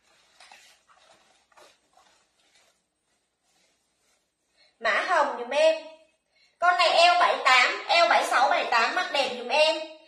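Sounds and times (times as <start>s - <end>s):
cloth rustling: 0.0s - 4.8s.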